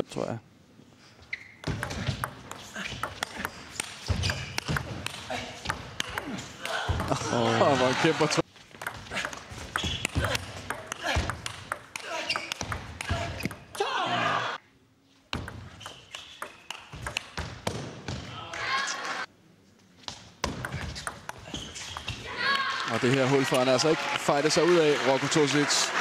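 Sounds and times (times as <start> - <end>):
ball bouncing on table: 1.6 - 6.3, 8.8 - 13.6, 15.4 - 17.8
ball clicking off paddles: 15.4 - 17.8.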